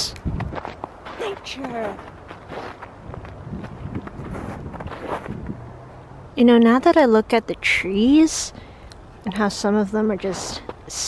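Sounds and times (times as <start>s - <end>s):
footsteps on snow: 0.2s - 5.6s, 10.2s - 11.0s.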